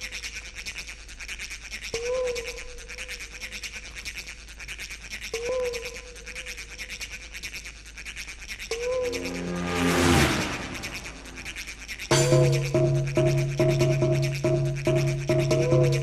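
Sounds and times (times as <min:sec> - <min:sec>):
held synth tone: 0:08.8 - 0:12.9
breakbeat rave music: 0:12.1 - 0:16.0.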